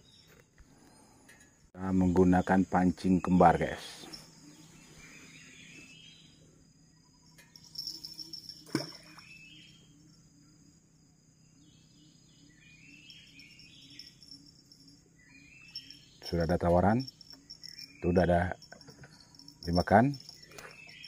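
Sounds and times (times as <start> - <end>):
birds calling: 0.0 - 10.5, 11.5 - 21.0
insects droning: 0.0 - 21.0.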